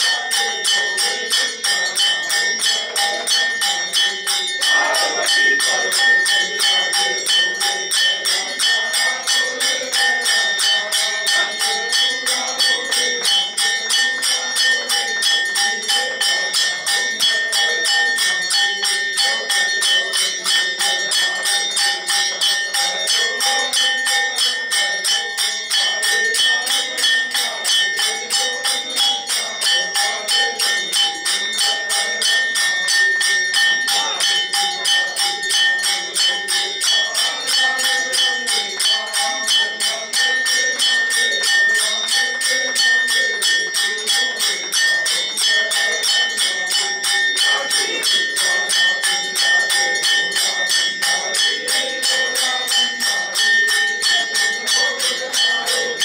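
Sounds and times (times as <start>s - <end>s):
people clapping: 0.0s - 56.0s
people singing: 0.0s - 56.0s.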